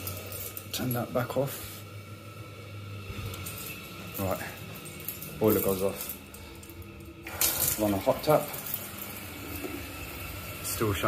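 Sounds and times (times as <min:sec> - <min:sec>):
boiler humming: 0:00.0 - 0:11.0.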